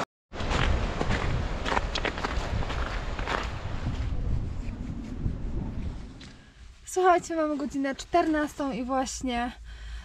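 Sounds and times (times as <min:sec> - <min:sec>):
crunching footsteps on trail: 0:00.4 - 0:06.7
wind buffeting microphone: 0:00.4 - 0:08.1.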